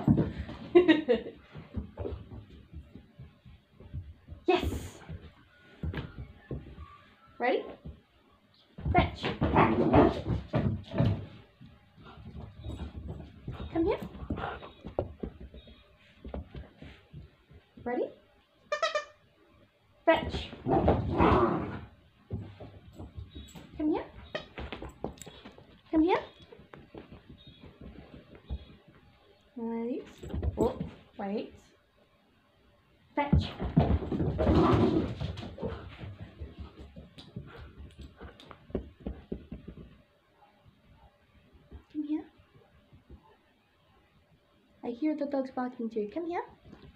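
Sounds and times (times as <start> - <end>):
puppy paws on carpet: 0.0 - 17.9, 22.2 - 31.2, 33.4 - 43.4.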